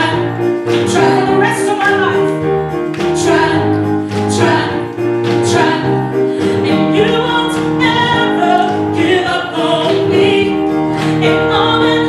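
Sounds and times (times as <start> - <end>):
gospel group singing in harmony: 0.0 - 12.0.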